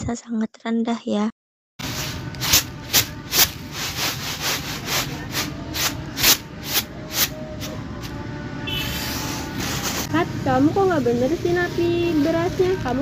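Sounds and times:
rice swishing on bamboo tray: 1.8s - 7.4s, 8.9s - 10.1s.

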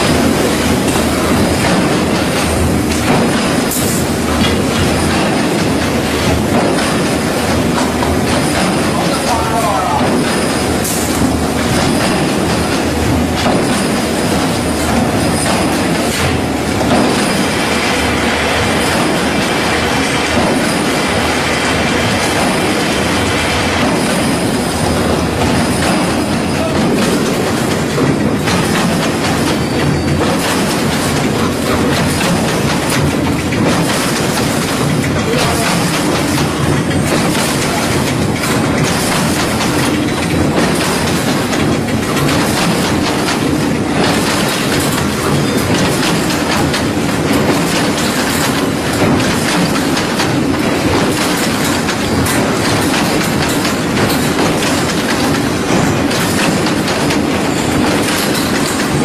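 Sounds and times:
wire-weaving machinery running: 0.0s - 59.0s.

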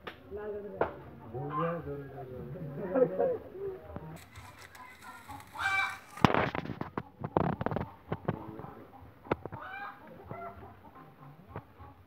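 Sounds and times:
newspaper rustling and crackling: 4.2s - 6.8s.

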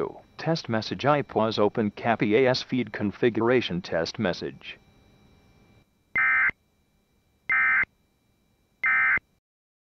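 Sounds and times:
screechy two-tone data bursts: 6.2s - 6.6s, 7.5s - 7.9s, 8.8s - 9.3s.

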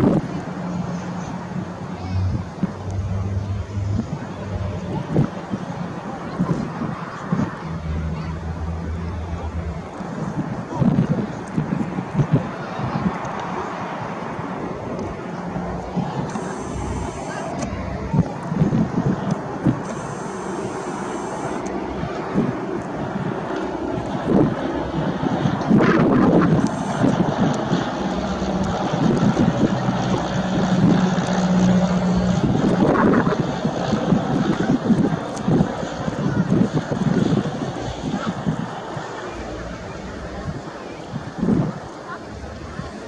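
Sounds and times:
wind buffeting microphone: 0.0s - 20.8s, 21.4s - 43.0s
light aircraft engine drone: 0.0s - 43.0s.

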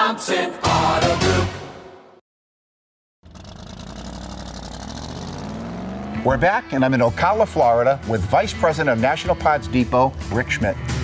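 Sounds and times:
car engine idling: 3.2s - 7.6s.

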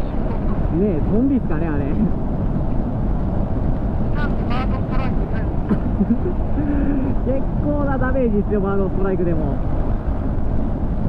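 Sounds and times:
motorcycle road rumble: 0.0s - 11.0s
wind rush: 0.0s - 11.0s.

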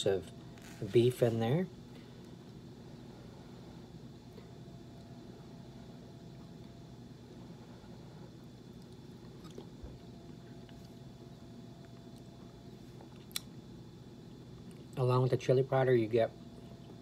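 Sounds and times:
low room hum: 0.0s - 17.0s
wet chewing mouth sounds: 8.8s - 10.9s.

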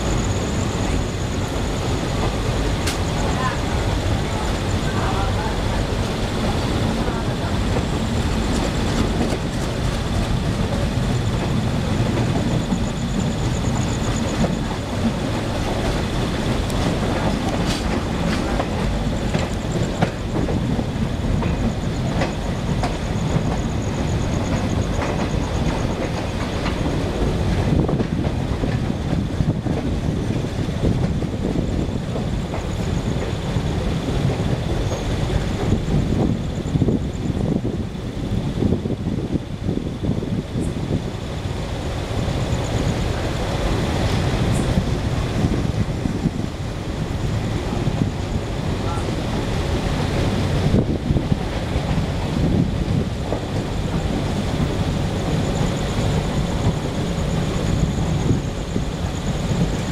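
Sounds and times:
train wheel-on-rail rumble: 0.0s - 59.9s.

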